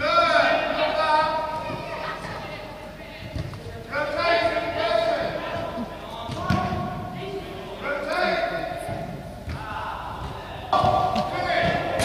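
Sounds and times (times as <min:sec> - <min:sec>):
young footballers shouting: 0:09.5 - 0:12.0.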